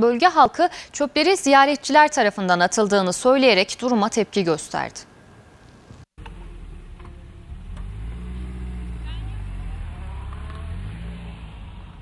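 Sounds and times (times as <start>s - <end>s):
vehicle engine passing: 6.2s - 12.0s.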